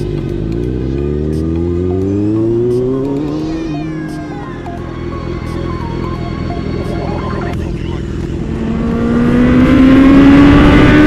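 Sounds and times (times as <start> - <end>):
background music with steady beat: 0.0 - 7.8
motorcycle engine accelerating: 0.0 - 11.0.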